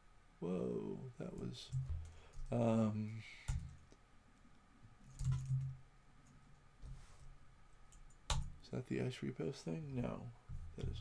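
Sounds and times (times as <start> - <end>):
computer keyboard typing: 5.1 - 5.7.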